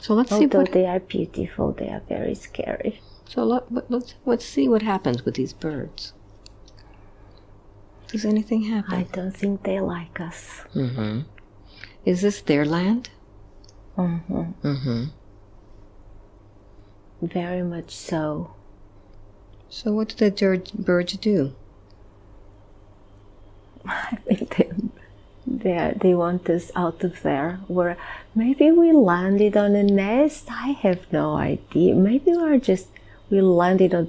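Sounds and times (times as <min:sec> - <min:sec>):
low room hum: 0:00.0 - 0:34.0.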